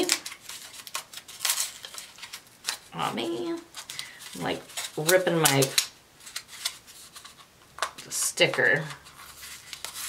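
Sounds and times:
paper rustling tear: 0.0 - 7.4, 9.0 - 10.0.

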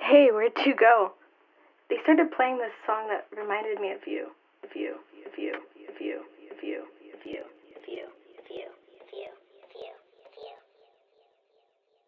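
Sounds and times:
looped chopped voice sample: 3.7 - 10.8.

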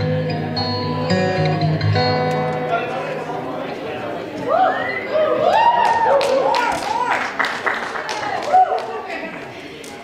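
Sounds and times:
audience whooping and cheering: 4.4 - 9.1.

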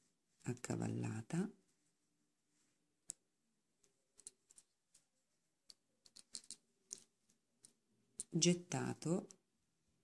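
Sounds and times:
knitting needles clicking: 3.0 - 8.5.

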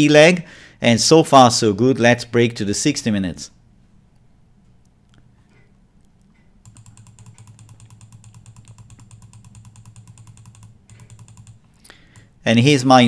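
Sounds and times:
rapid computer clicking: 6.6 - 12.4.

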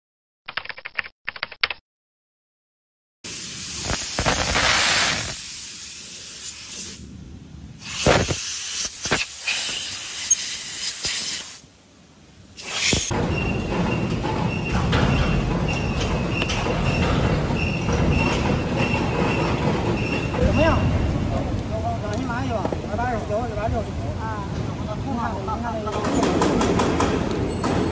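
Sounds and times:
keyboard typing: 0.5 - 1.8
high squeak: 12.7 - 21.0
bearing rumbling: 13.1 - 23.2.

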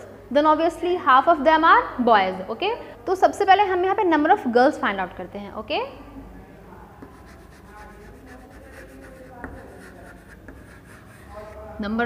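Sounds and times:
chalk tap: 7.0 - 11.7
chalk scratching on chalkboard: 7.0 - 11.9.

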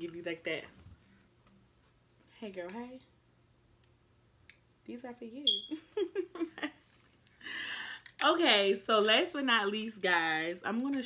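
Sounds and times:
woman's voice: 0.0 - 0.8, 2.3 - 3.1, 4.9 - 5.6, 8.2 - 11.0.

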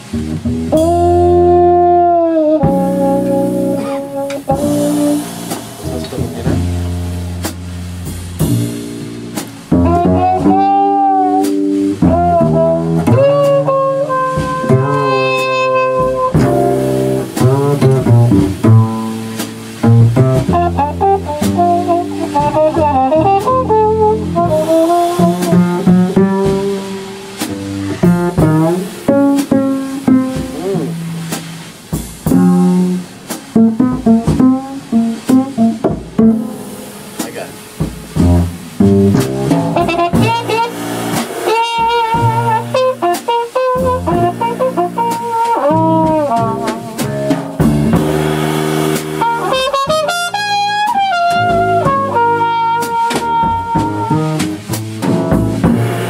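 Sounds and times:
drum kit with cymbals: 0.0 - 56.0
walking upright bass: 0.0 - 56.0
trumpet playing melody: 0.1 - 56.0.

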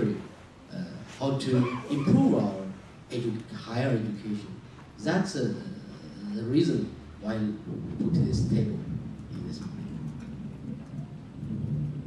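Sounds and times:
microphone handling rumble: 0.0 - 3.6, 4.9 - 12.0.

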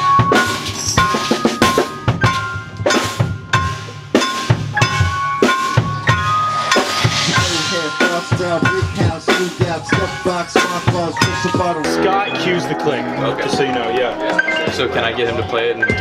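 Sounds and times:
drum and percussion hits: 0.0 - 12.2, 12.8 - 16.0
high held note: 4.8 - 9.5.

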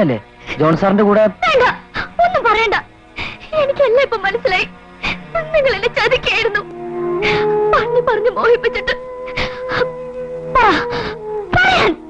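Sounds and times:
film music: 0.0 - 12.0
woman sobbing: 5.1 - 12.0.

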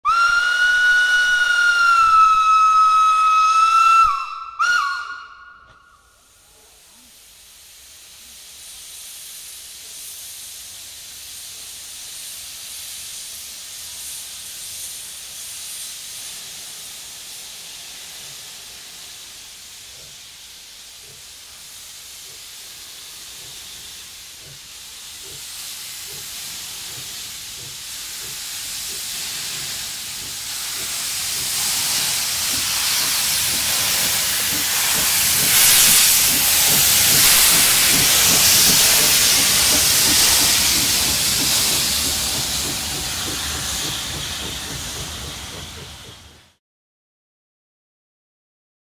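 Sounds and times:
steam locomotive whistle: 0.0 - 6.3
steam hissing: 0.0 - 46.6.

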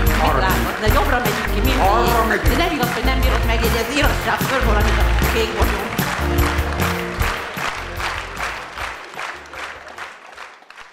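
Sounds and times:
audience applause: 0.0 - 10.9.

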